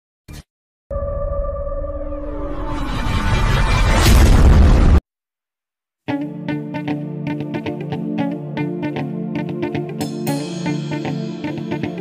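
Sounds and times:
boom impact with deep rumble: 3.8 - 5.0.

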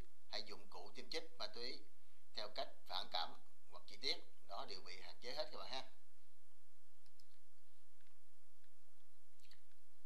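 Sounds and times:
low background hum: 0.0 - 10.0
computer mouse clicks: 7.0 - 7.4.

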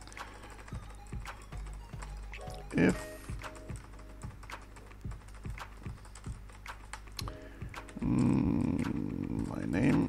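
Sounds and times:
keyboard typing: 0.0 - 10.0
quiet background music: 0.0 - 10.0.

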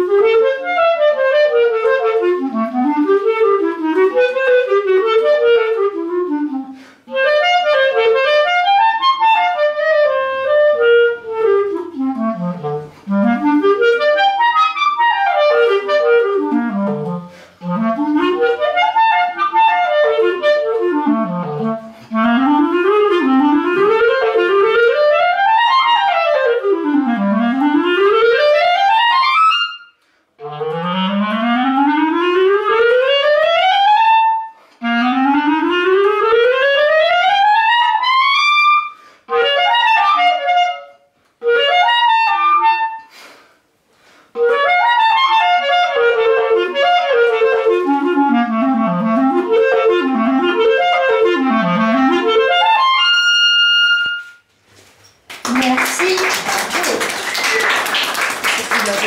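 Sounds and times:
clarinet playing fast runs: 0.0 - 43.4, 44.4 - 54.5, 55.4 - 59.0.

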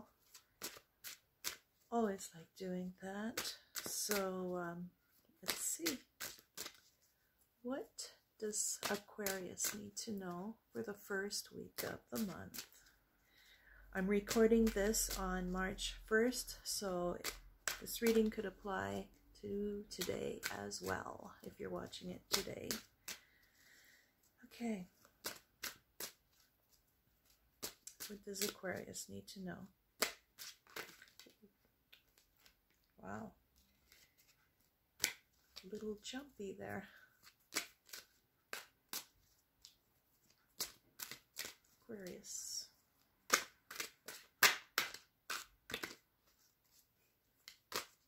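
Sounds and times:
cards snapping: 0.2 - 1.7, 3.4 - 4.2, 5.4 - 6.9, 8.8 - 9.8, 16.3 - 18.4, 21.4 - 23.4, 25.0 - 26.5, 27.2 - 29.0, 29.9 - 32.6, 35.0 - 35.8, 37.0 - 42.3, 43.2 - 46.0, 47.4 - 48.0.

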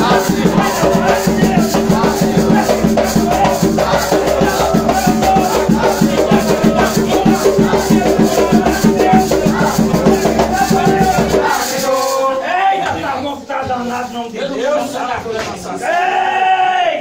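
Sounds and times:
drums fast beat: 0.0 - 12.2
maracas shaking: 0.0 - 15.0
voices singing: 0.0 - 17.0.

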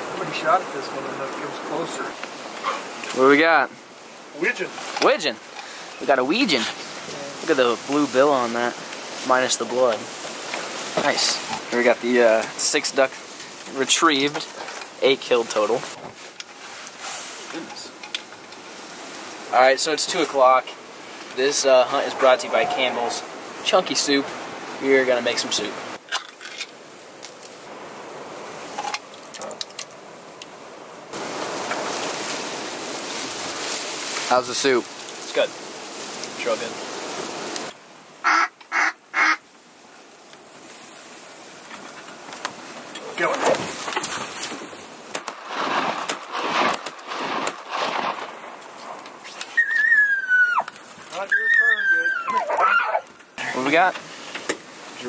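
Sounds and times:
steady rushing noise: 0.0 - 18.0, 18.8 - 26.0
high whistled notes: 49.2 - 50.6.

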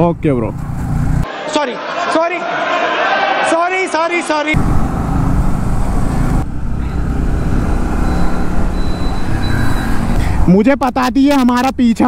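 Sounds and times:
motorbikes passing: 0.0 - 2.2, 4.4 - 10.5
motorcycle engine running: 0.4 - 1.2, 4.6 - 9.5.

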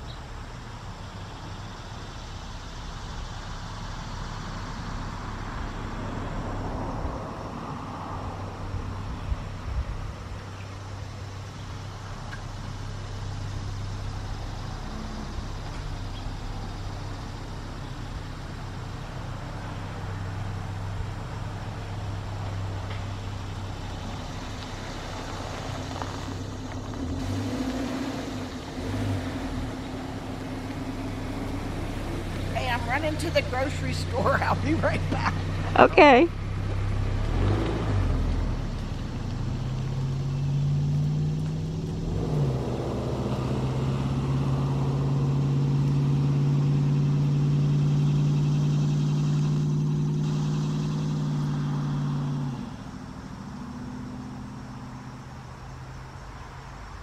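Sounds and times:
engine humming: 0.0 - 57.0
traffic noise: 0.0 - 57.0.

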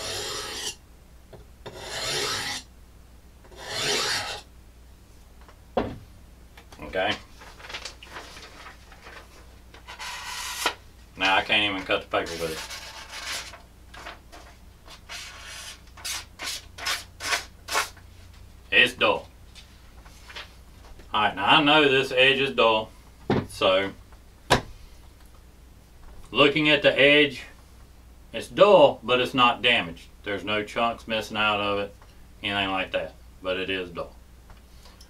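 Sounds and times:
knife scraping hard object: 0.0 - 0.8, 1.6 - 2.7, 3.5 - 4.4, 9.9 - 10.8, 12.2 - 13.5.

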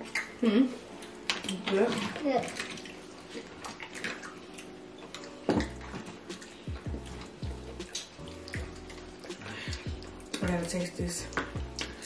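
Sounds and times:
wet chewing and lip-smacking: 0.0 - 1.6, 2.4 - 12.0
background music with bass beat: 5.6 - 12.0.

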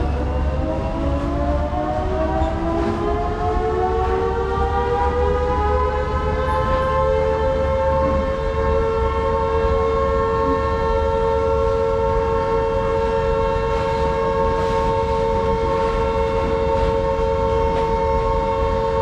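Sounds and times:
train horn two-note chord: 4.0 - 19.0.

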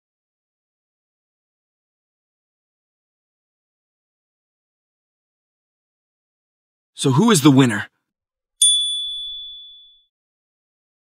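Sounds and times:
high clear ding chime: 8.6 - 10.1.

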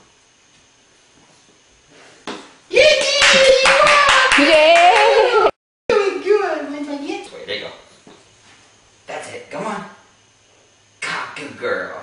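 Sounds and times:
person cheering and laughing: 2.7 - 5.6
hands clapping quickly: 2.9 - 5.2.

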